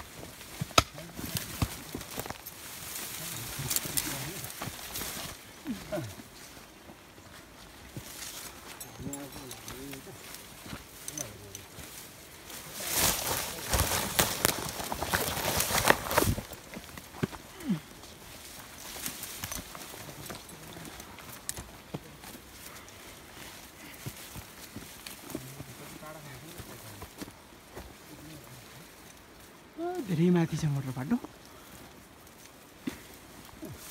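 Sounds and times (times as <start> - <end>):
footsteps snapping in undergrowth: 0.0 - 6.7, 7.3 - 28.2
brush rustling and crackling: 0.0 - 33.9.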